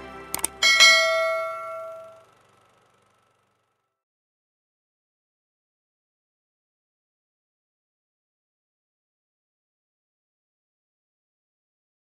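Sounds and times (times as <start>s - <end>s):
bell ding: 0.4s - 2.3s.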